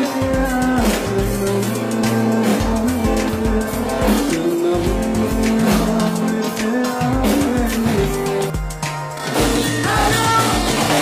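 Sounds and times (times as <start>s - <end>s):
acoustic guitar: 0.0s - 11.0s
drums: 0.0s - 11.0s
live band music: 0.0s - 11.0s.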